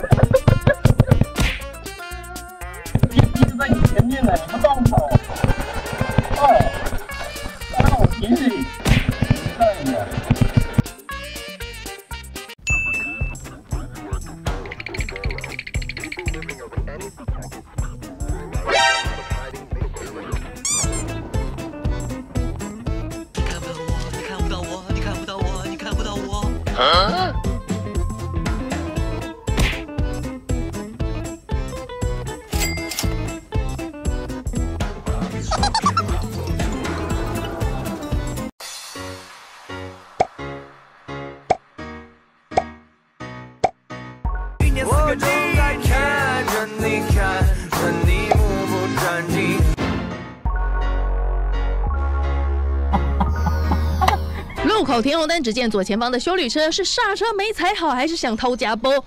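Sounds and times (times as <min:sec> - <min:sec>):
background music with steady beat: 0:00.0 - 0:54.7
sharp pop sound effects: 0:00.1 - 0:01.7, 0:08.8 - 0:09.6, 0:29.5 - 0:29.9
song with singing voice: 0:44.6 - 0:49.8.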